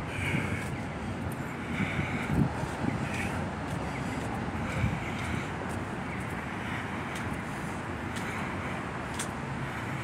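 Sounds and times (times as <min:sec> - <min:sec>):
road traffic rumble: 0:00.0 - 0:10.0
faint light ticks: 0:09.1 - 0:09.4.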